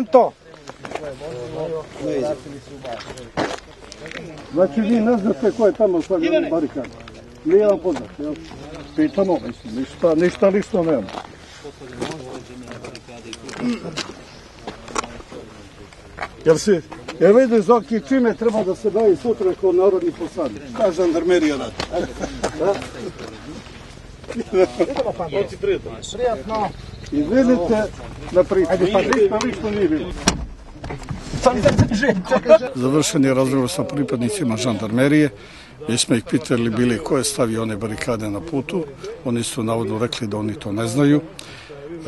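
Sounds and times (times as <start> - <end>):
men talking in background: 0.0 - 42.0.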